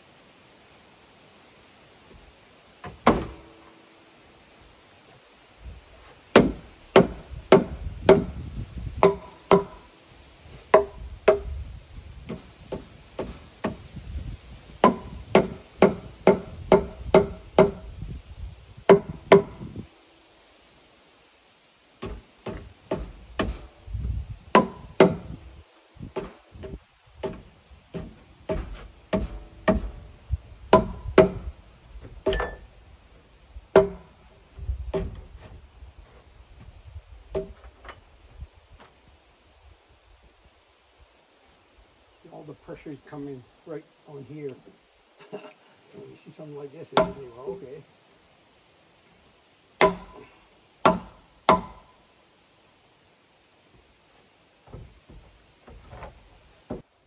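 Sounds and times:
hammer blows on wooden post: 0:06.3 - 0:08.4, 0:09.0 - 0:09.8, 0:10.7 - 0:11.6, 0:14.8 - 0:17.9, 0:18.9 - 0:19.7, 0:24.5 - 0:25.4, 0:26.1 - 0:30.1, 0:30.7 - 0:31.6, 0:49.8 - 0:51.9.

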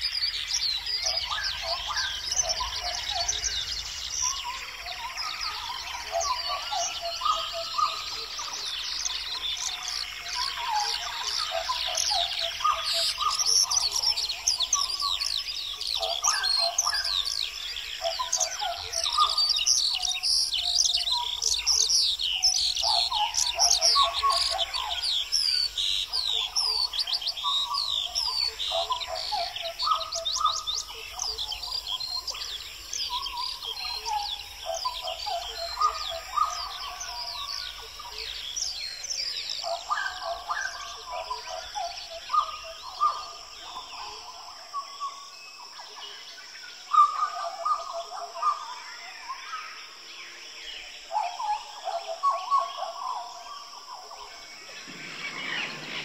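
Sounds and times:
birds chirping and singing: 0:00.0 - 0:56.0.

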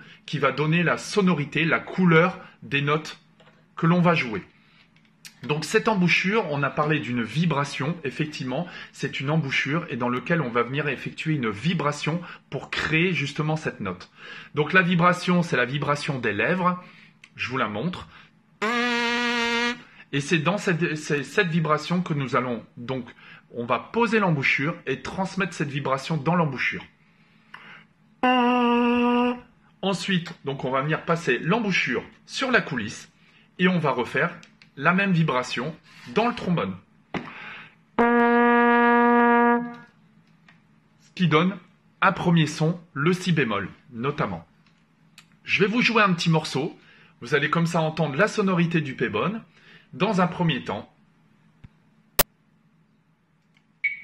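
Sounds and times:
lips buzzing into mouthpiece: 0:18.6 - 0:19.9.

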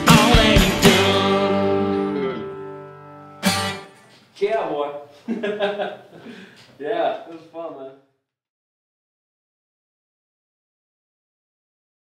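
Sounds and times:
live band playing boogie: 0:00.0 - 0:02.3.

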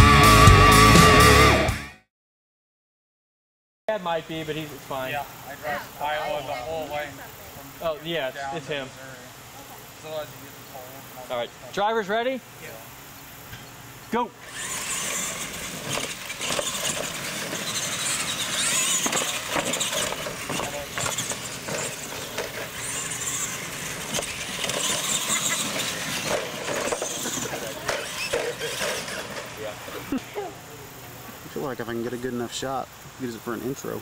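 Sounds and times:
rc truck electric motors whining: 0:04.3 - 0:32.7
tires churning dirt: 0:14.1 - 0:34.0.

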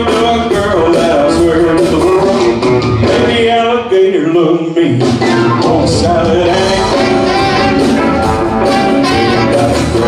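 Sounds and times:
live rock band playing: 0:00.0 - 0:10.0
man singing: 0:00.0 - 0:10.0.

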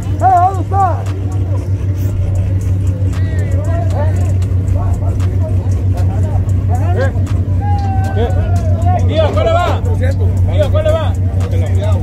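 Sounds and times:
race car engines idling: 0:00.0 - 0:12.0
spectators calling out: 0:00.0 - 0:12.0.

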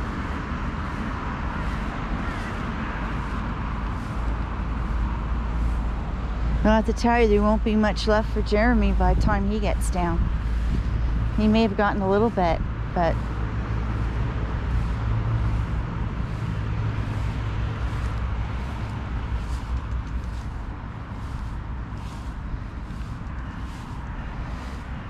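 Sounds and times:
faint footsteps walking: 0:00.0 - 0:25.0
road traffic rumble: 0:00.0 - 0:25.0
wind on the microphone: 0:00.0 - 0:25.0.

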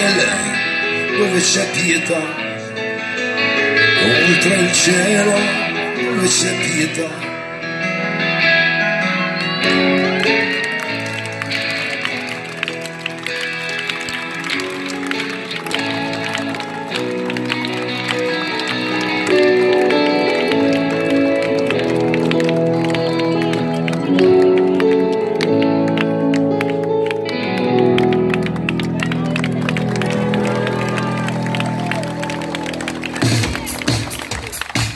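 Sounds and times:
pop-rock band playing instrumental: 0:00.0 - 0:34.8.

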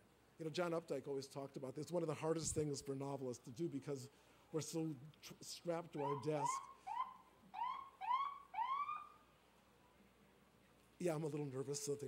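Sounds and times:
siren whooping: 0:06.0 - 0:09.2.

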